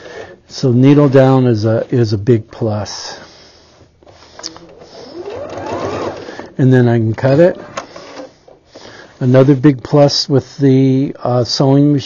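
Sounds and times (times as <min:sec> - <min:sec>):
sewing machine motor whine: 0:04.6 - 0:06.6.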